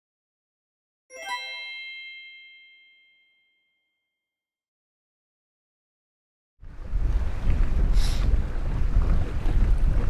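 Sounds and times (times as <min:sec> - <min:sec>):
bright bell-like chime: 0:01.1 - 0:04.1.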